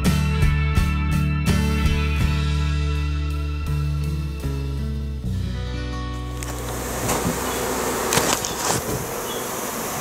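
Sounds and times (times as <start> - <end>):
background music: 0.0 - 7.0
honey bees buzzing: 6.1 - 10.0.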